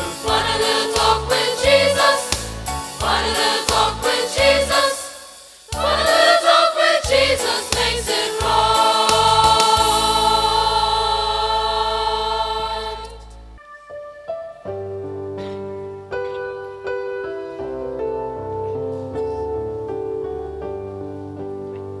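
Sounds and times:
choir singing a hymn: 0.0 - 13.4
instrumental accompaniment: 0.0 - 18.6.

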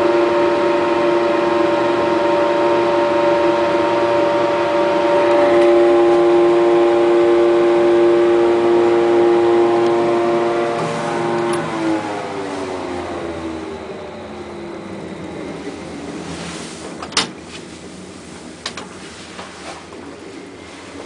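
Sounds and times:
lift exhaust fan droning hum: 0.0 - 21.0.

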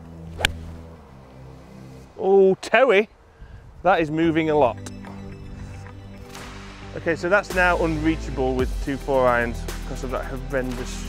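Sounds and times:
background music: 0.0 - 2.6, 4.2 - 11.0
golf club striking ball: 0.3 - 0.8.

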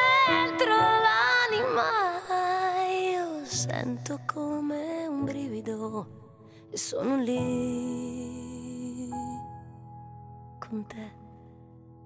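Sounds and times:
woman singing: 0.0 - 9.8, 10.6 - 11.4.

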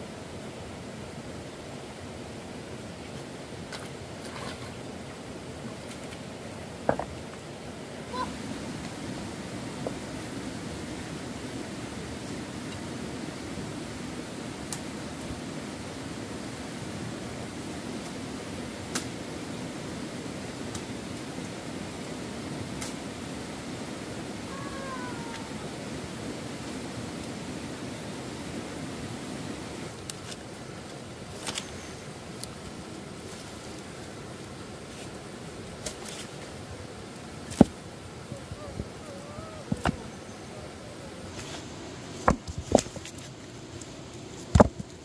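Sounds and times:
stream running over rocks: 0.0 - 45.0.

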